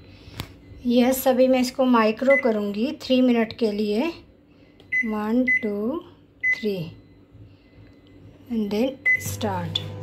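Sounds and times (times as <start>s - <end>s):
microwave keypad beep: 2.2s - 2.6s, 4.9s - 5.8s, 6.4s - 7.2s, 8.2s - 10.0s.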